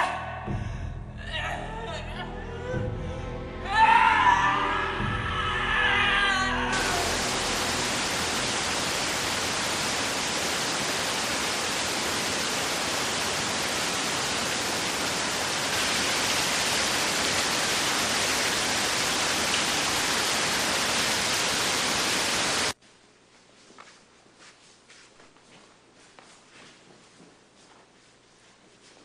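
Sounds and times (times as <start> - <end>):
waterfall rushing: 6.7 - 22.8.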